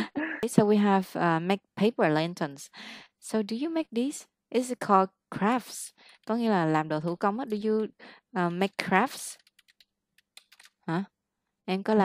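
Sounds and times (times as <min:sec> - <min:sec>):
computer keyboard typing: 0:07.0 - 0:10.8.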